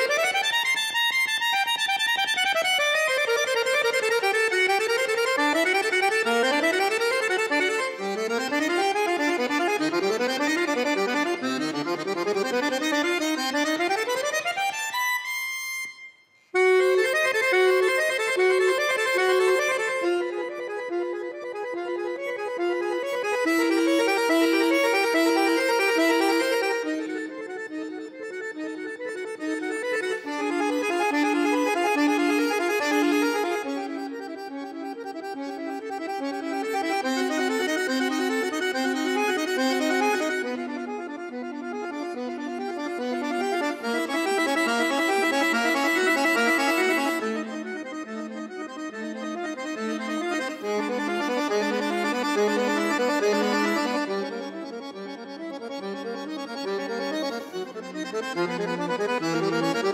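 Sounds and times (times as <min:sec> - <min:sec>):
button accordion playing: 0:00.0 - 0:59.9.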